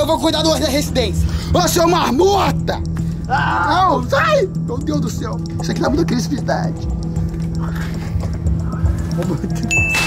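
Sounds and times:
background music with drone and beat: 0:00.0 - 0:10.0.

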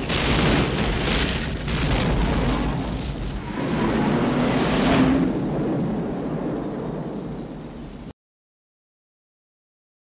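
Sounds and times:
heavy explosion blast: 0:00.0 - 0:07.1.

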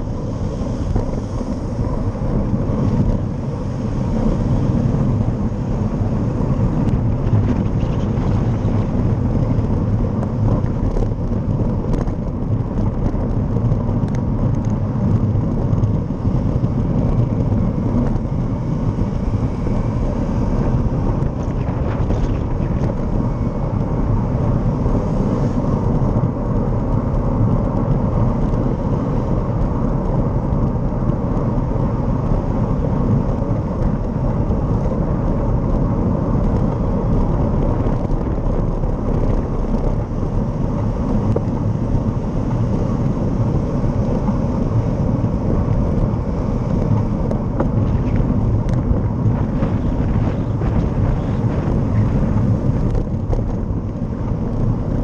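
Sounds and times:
road and passing vehicles: 0:00.0 - 0:55.0
wind rumble on microphone: 0:00.0 - 0:55.0.

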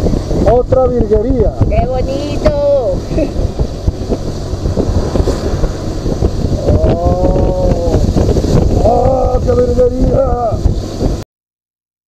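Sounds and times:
motorcycle riding rumble: 0:00.0 - 0:11.2
wind buffeting microphone: 0:00.0 - 0:11.2.

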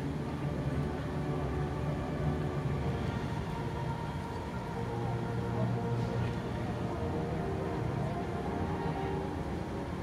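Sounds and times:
faint distant music: 0:00.0 - 0:10.0.

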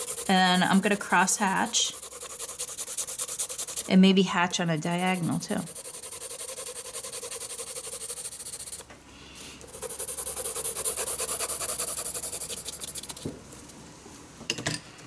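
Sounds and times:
pencil hatching on paper: 0:00.0 - 0:08.9, 0:09.7 - 0:13.3.

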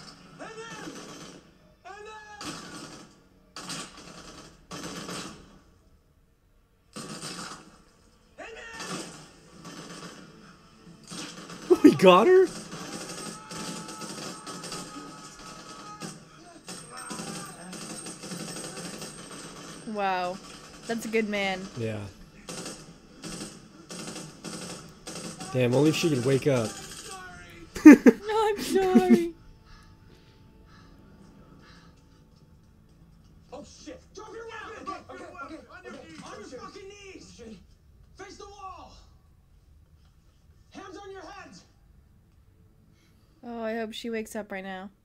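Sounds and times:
person shouting: 0:11.7 - 0:12.5, 0:28.3 - 0:29.3.

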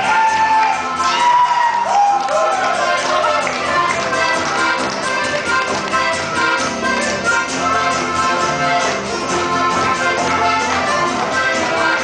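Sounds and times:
accordion: 0:00.0 - 0:12.0
guitar: 0:00.0 - 0:12.0.

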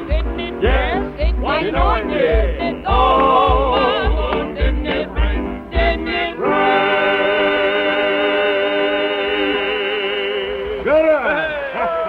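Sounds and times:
steady low beat: 0:00.0 - 0:06.3
piano: 0:00.0 - 0:10.8
vocal group singing gospel: 0:00.0 - 0:12.0.

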